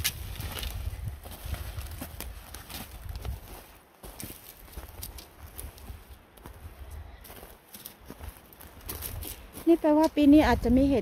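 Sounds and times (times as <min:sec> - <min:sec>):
footsteps on gravel: 0:00.0 - 0:10.4.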